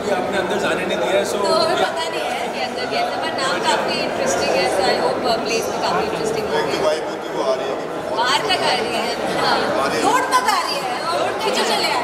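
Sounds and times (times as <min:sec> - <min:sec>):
people talking at once: 0:00.0 - 0:12.0.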